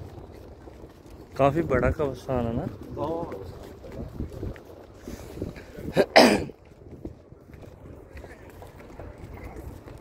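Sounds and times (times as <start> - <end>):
wind rumbling on microphone: 0.0 - 10.0.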